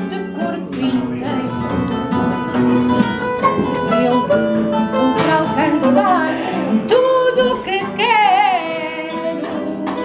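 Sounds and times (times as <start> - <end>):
woman singing with vibrato: 0.0 - 2.2, 3.7 - 10.0
plucked guitar: 0.0 - 10.0.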